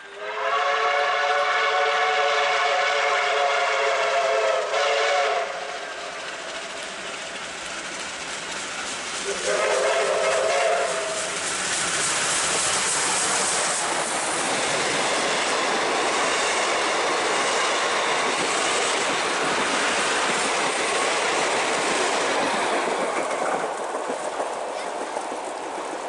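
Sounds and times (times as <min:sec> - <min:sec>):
train wheels on rails: 0:00.0 - 0:26.0.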